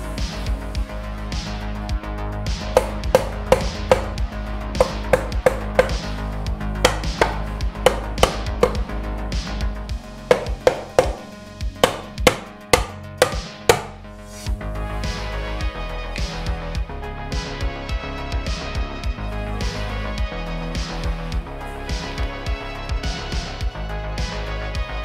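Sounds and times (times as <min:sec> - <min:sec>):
background music: 0:00.0 - 0:25.0
mallet tapping on metal: 0:02.8 - 0:04.1, 0:04.8 - 0:06.0, 0:06.8 - 0:08.8, 0:10.3 - 0:14.0.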